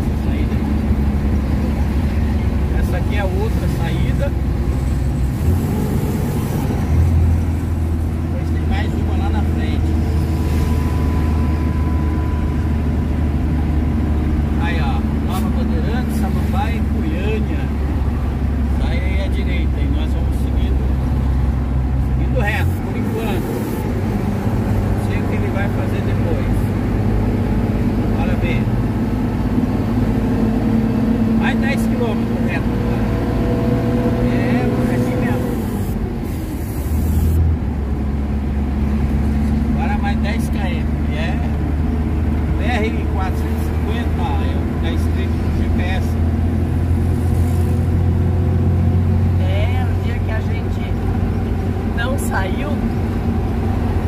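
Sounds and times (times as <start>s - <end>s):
truck engine droning: 0.0s - 54.0s.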